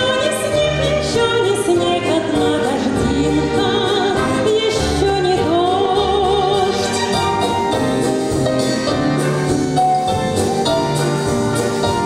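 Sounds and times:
woman singing with vibrato: 0:00.0 - 0:07.1
orchestra playing: 0:00.0 - 0:12.0.

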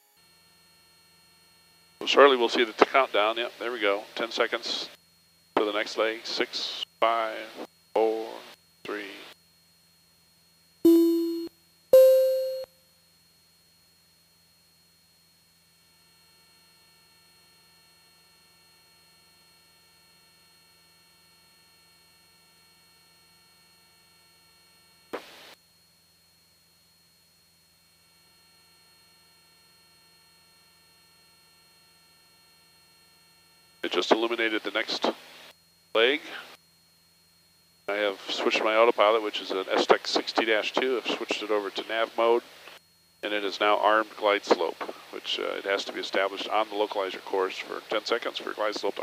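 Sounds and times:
two-note electronic alert chime: 0:10.9 - 0:12.7
faint intercom hiss: 0:33.8 - 0:36.6, 0:43.2 - 0:49.0.

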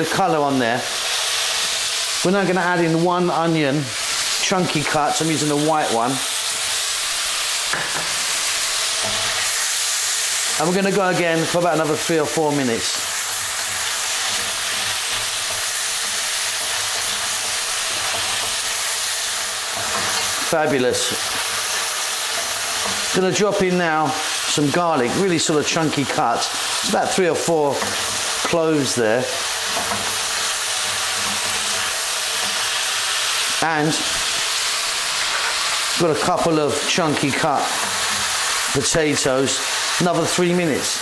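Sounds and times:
pork and onion sizzling in oil: 0:00.0 - 0:41.0.

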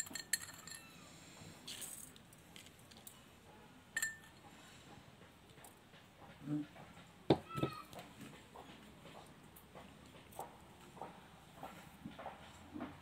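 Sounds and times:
crystals rustling in jar: 0:00.0 - 0:00.9, 0:01.6 - 0:03.1
glass jar clinking: 0:00.0 - 0:00.9, 0:04.0 - 0:04.4.

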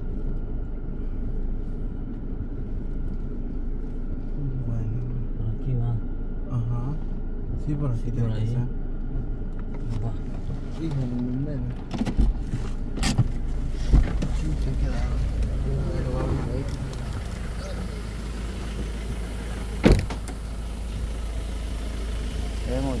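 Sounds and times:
truck cabin low rumble: 0:00.0 - 0:23.0.

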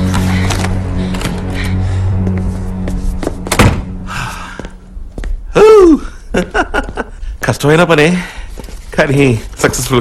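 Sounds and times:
film score music: 0:00.0 - 0:10.0
door slamming shut: 0:03.5 - 0:04.0
man exclaiming: 0:05.6 - 0:06.1.

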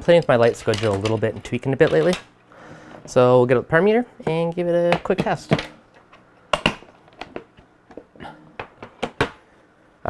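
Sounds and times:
plastic case clicks and knocks: 0:06.5 - 0:09.4.

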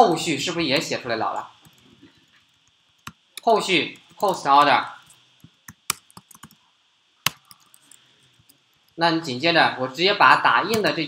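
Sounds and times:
computer keyboard keys clicking: 0:05.6 - 0:06.6, 0:07.3 - 0:07.9.

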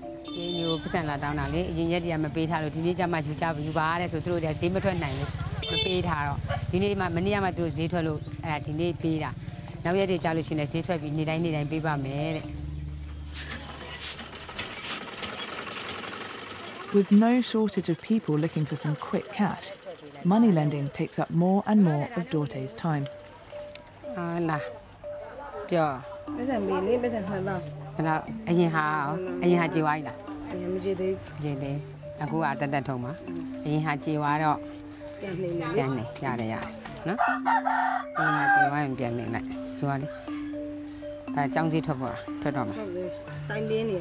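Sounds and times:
sewing machine running: 0:13.7 - 0:23.6
rooster crowing: 0:37.2 - 0:38.8.

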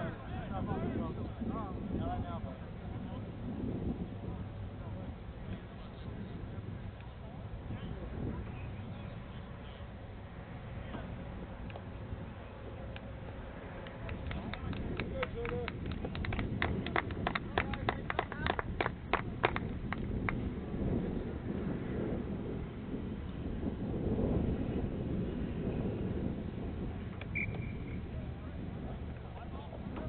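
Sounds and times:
wind rumble on microphone: 0:00.0 - 0:30.0.

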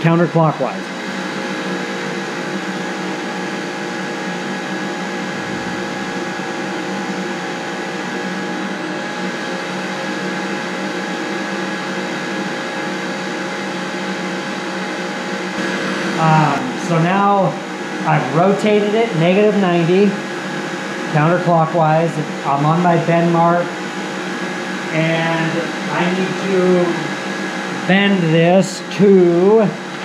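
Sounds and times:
motor humming with whine: 0:00.0 - 0:30.0.

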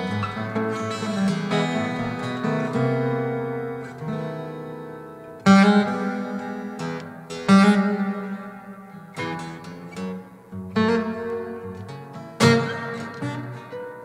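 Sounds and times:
acoustic guitar playing: 0:00.0 - 0:14.0
loud strummed guitar chords: 0:00.0 - 0:14.0.

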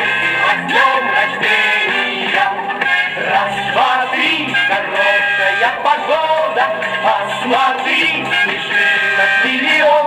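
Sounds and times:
pop song on record player: 0:00.0 - 0:10.0.

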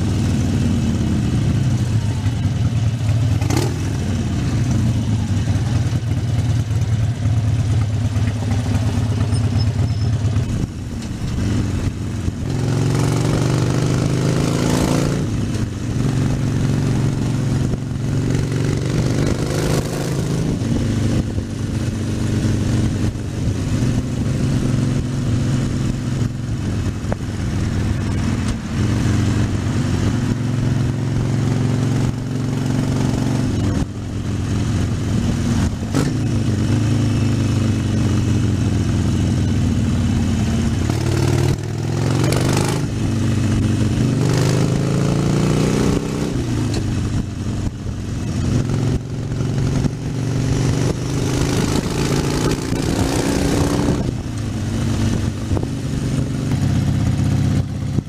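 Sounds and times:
motorcycle engine running: 0:00.0 - 0:58.0
wind noise on microphone: 0:10.4 - 0:36.8, 0:40.8 - 0:58.0.

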